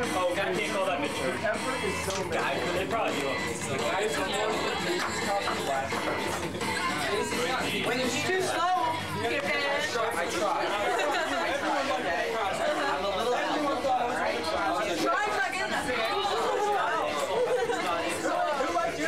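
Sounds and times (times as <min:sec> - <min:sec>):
crowd babble: 0:00.0 - 0:19.0.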